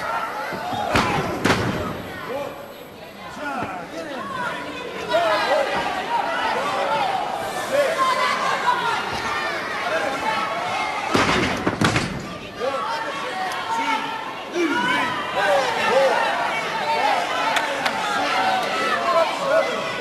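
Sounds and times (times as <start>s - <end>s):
arena crowd shouting: 0.0s - 11.6s, 12.2s - 20.0s.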